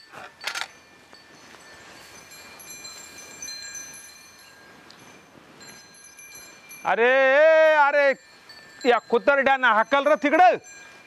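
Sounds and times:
faint high ringing tones: 0.0 - 11.0.

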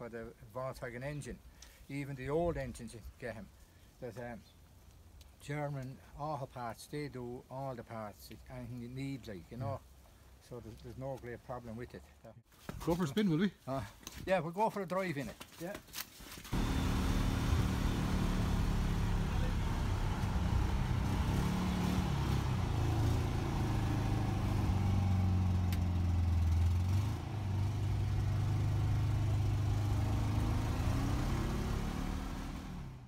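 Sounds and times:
snow vehicle engine running: 16.6 - 33.0.

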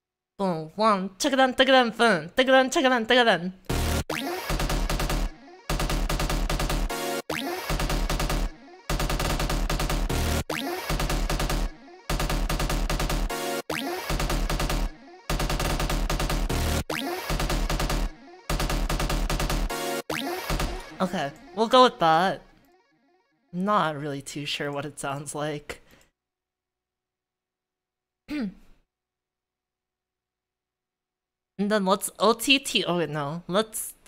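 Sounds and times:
rapid stuttering bass: 3.7 - 21.3
distorted electronic music loop: 3.7 - 21.6.

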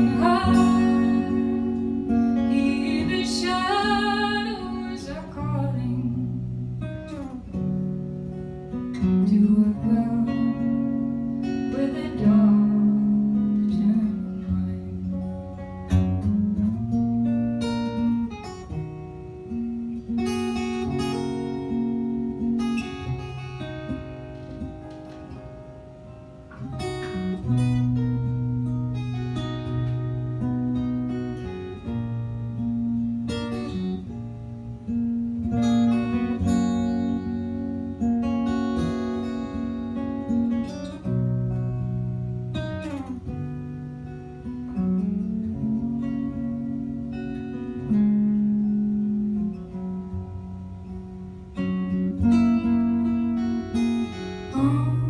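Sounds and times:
acoustic guitar playing: 0.0 - 55.0.

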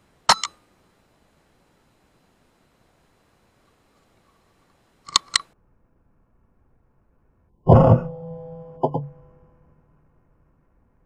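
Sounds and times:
faint hiss: 0.0 - 7.6
sharp clicks: 0.3 - 0.6, 5.0 - 5.5.

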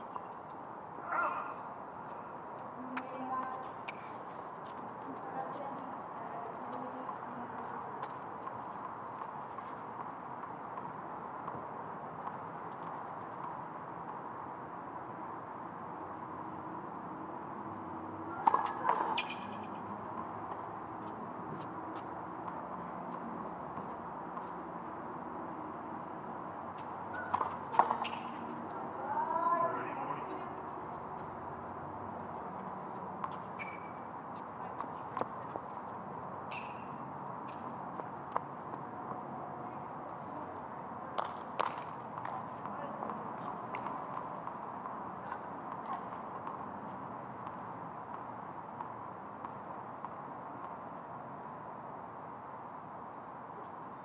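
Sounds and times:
tennis ball struck by rackets: 18.3 - 20.7, 26.8 - 28.7, 41.2 - 44.5
ball bouncing on hard court: 18.3 - 21.2, 26.8 - 28.8.

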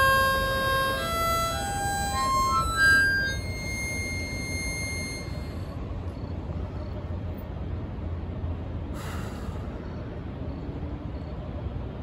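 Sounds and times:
harmonica high note: 0.0 - 5.9
low outdoor background rumble: 0.0 - 12.0.

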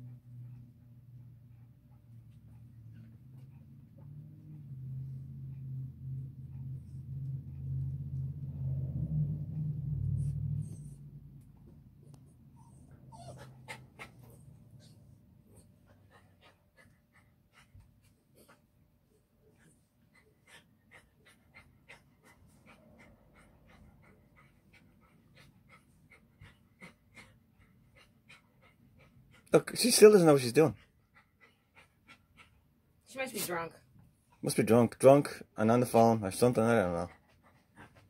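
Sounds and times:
low hum: 0.0 - 12.5
dog panting: 0.0 - 38.0.

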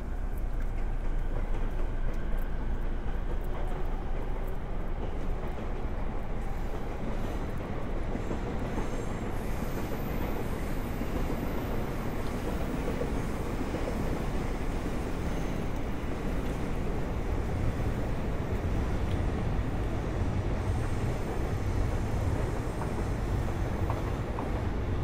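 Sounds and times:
train wheels rumbling on rails: 0.0 - 25.0.

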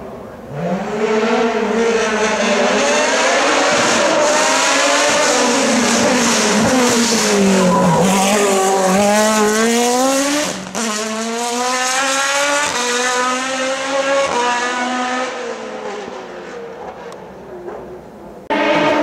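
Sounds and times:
race car engine revving: 0.4 - 17.8, 18.4 - 19.0.

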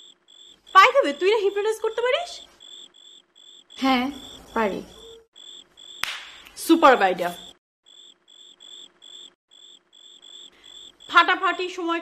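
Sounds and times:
crickets chirping: 0.0 - 12.0
woman's voice: 0.8 - 2.4, 3.8 - 5.0, 11.1 - 12.0.

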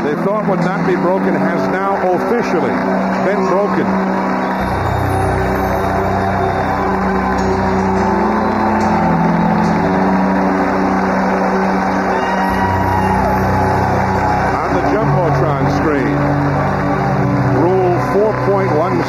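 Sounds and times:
music over public address system: 0.0 - 19.0
stadium crowd noise: 0.0 - 19.0.

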